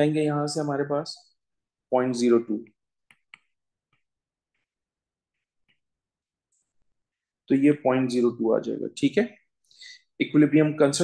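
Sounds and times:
stylus tapping on glass screen: 3.0s - 4.7s.

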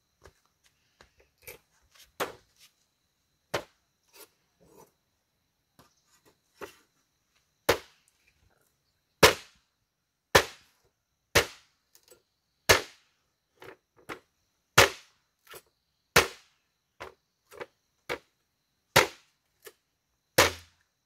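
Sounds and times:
machete chopping bamboo: 7.7s - 8.0s, 9.2s - 9.6s, 10.3s - 10.7s, 11.3s - 11.7s, 12.7s - 13.0s, 14.8s - 15.1s, 16.1s - 16.5s, 18.9s - 19.3s, 20.4s - 20.8s.

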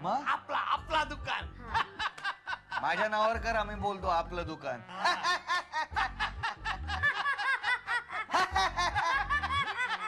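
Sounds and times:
group of people laughing: 1.7s - 3.1s, 4.9s - 10.0s.

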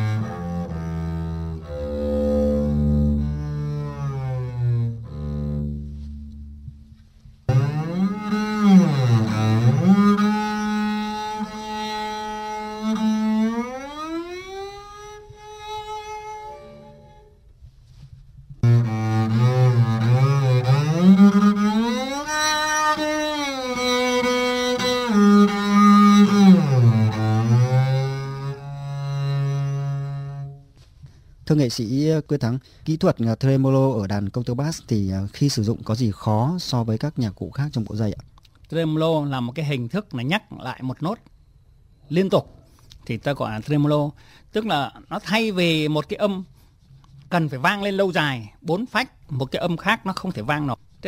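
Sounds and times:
bowed double bass glissando: 0.0s - 17.4s, 18.6s - 30.7s.

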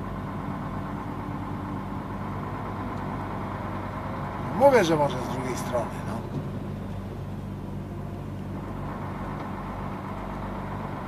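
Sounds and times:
diesel truck engine droning: 0.0s - 11.0s.

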